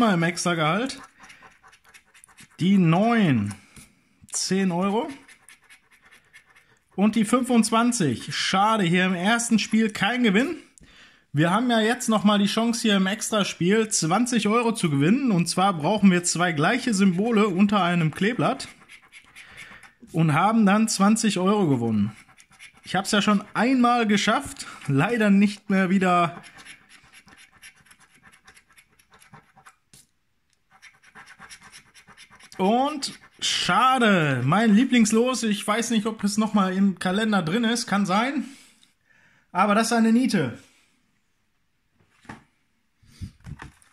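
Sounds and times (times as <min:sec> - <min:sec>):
coin scratching scratch card: 0:00.1 - 0:03.5, 0:05.0 - 0:08.4, 0:16.8 - 0:20.2, 0:22.0 - 0:23.8, 0:26.2 - 0:29.8, 0:30.7 - 0:33.7
coin scraping a scratchcard: 0:01.0 - 0:02.6, 0:05.1 - 0:06.8, 0:18.3 - 0:20.0, 0:30.7 - 0:33.4.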